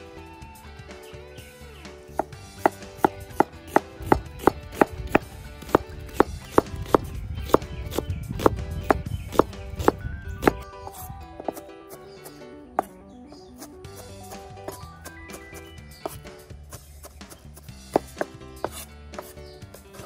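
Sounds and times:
background music: 0.0 - 20.0
cleaver chopping on plastic board: 2.2 - 10.6, 16.8 - 20.0.

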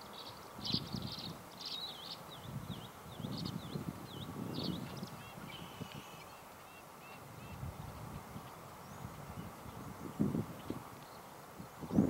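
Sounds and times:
faint bird chirps: 0.0 - 7.7.

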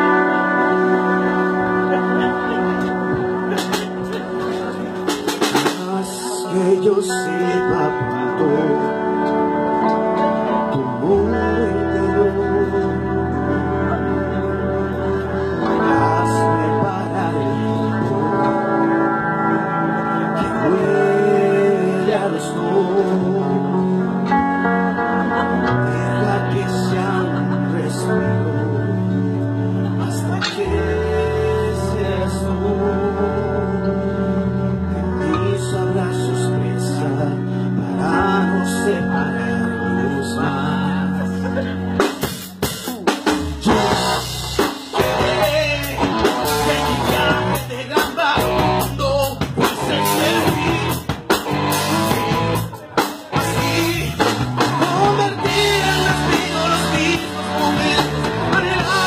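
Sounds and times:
electric guitar: 0.0 - 59.0
man singing: 0.0 - 59.0
rock band playing: 0.0 - 59.0
drum kit: 2.2 - 6.3, 41.6 - 59.0.

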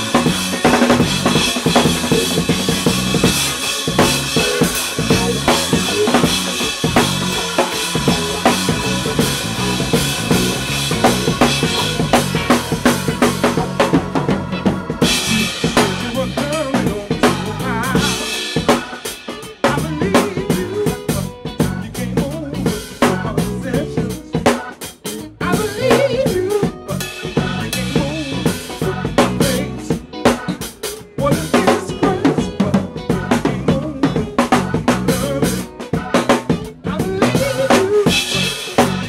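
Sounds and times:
bass guitar: 0.0 - 39.0
electric guitar: 0.0 - 39.0.

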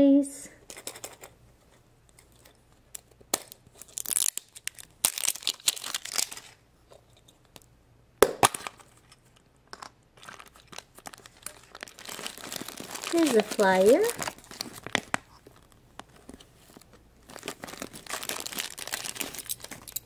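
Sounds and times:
sticker seal ripping: 3.3 - 6.5, 17.3 - 20.0
paper crinkling: 3.6 - 6.6, 10.2 - 20.0
plastic halves snapping apart: 7.6 - 8.8.

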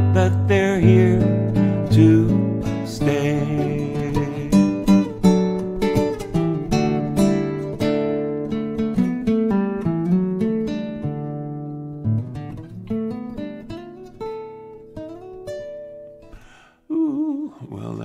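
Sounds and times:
classical guitar plucked notes: 0.0 - 16.4.

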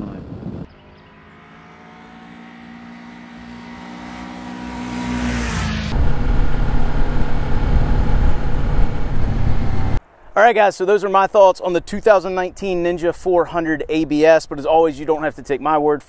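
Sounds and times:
motorcycle engine cruising: 0.0 - 10.0
motorcycle rough low rumble: 4.7 - 10.0.

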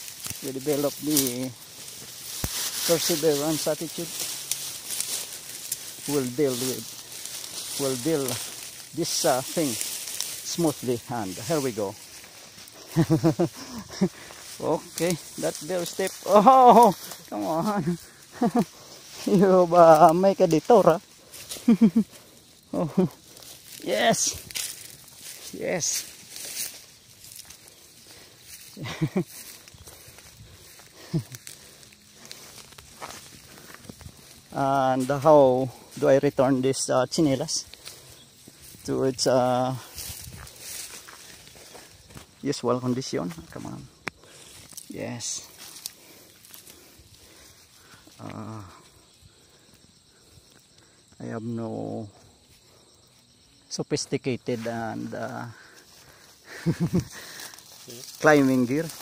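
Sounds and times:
footsteps through grass and leaves: 0.0 - 59.0
man laughing: 12.7 - 19.7, 21.4 - 23.2, 28.7 - 29.7, 30.9 - 31.6, 56.4 - 57.4.

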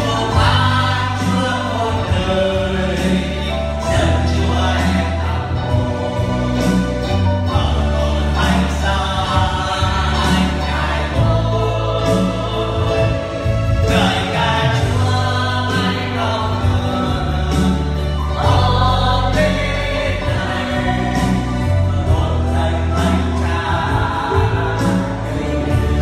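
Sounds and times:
electronic keyboard accompaniment: 0.0 - 26.0
sustained bass notes: 0.0 - 26.0
voices singing gospel song: 0.0 - 26.0.

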